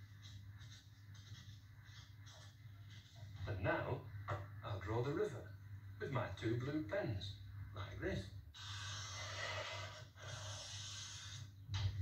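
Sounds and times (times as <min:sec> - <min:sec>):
felt-tip pens scratching on paper: 0:00.0 - 0:03.1, 0:08.6 - 0:11.5.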